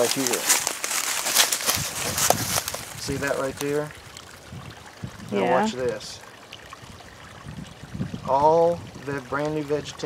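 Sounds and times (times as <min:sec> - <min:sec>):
footsteps crunching dry grass: 0:00.0 - 0:03.7.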